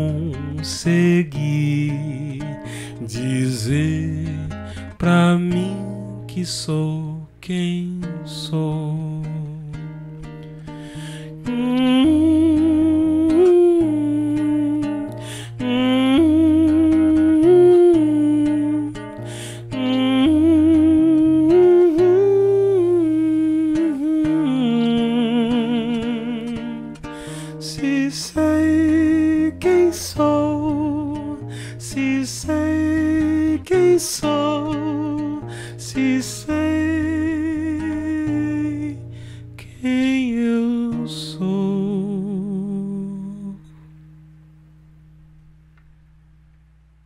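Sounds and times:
acoustic guitar: 0.0s - 47.0s
man humming a melody: 11.3s - 39.0s, 39.6s - 43.8s.

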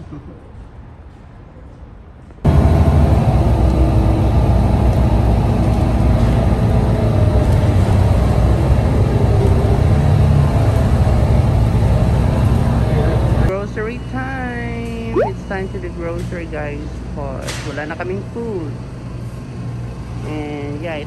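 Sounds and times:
bus engine and road rumble: 0.0s - 15.2s.

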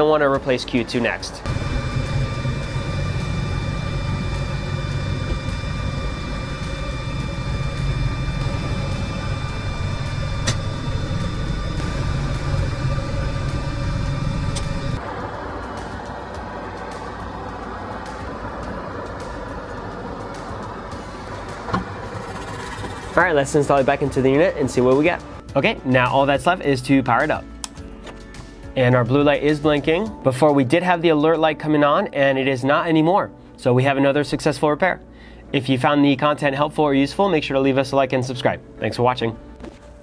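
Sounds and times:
background music: 0.0s - 40.0s
steady low hum: 1.3s - 25.5s
steady high tones: 1.4s - 18.4s.

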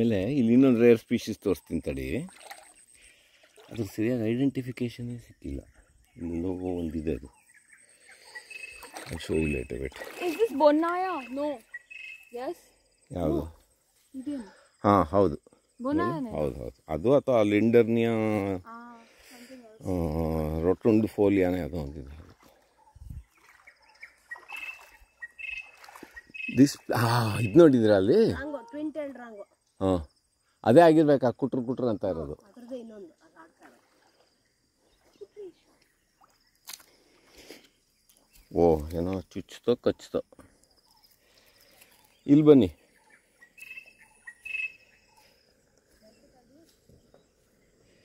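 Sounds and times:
faint insect trill: 0.0s - 48.0s
high chirping: 5.2s - 14.7s, 22.8s - 28.8s, 39.9s - 47.3s
bird calling in high notes: 24.0s - 27.7s, 43.0s - 45.2s.

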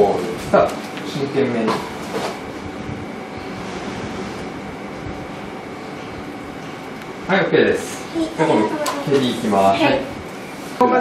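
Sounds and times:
studio room background noise: 0.0s - 11.0s.

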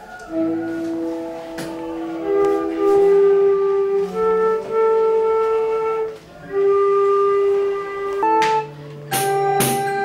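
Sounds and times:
flute and recorder note: 0.0s - 10.0s.

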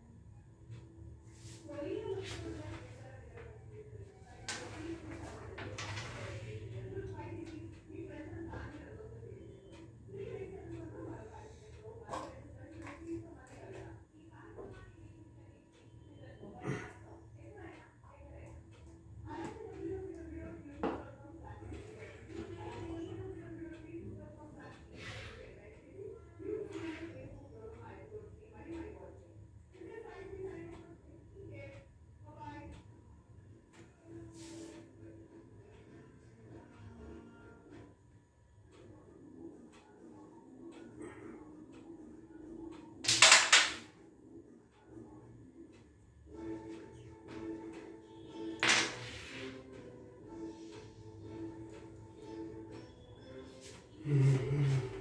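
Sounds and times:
faint background voices: 53.4s - 55.0s.

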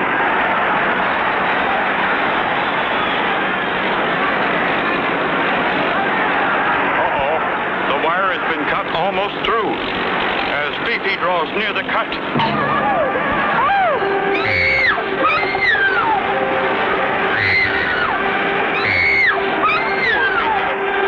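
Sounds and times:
biplane engine drone: 7.0s - 21.0s
cartoon music: 12.4s - 20.8s
high swooping cries: 12.4s - 21.0s.

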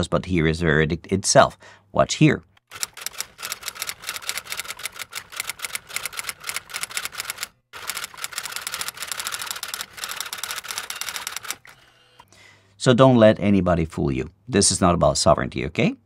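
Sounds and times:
typewriter keystroke clacking: 2.7s - 11.8s.

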